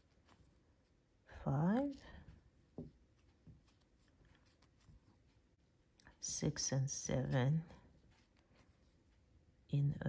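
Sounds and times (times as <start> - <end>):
crochet thread rustling: 0.0 - 10.0.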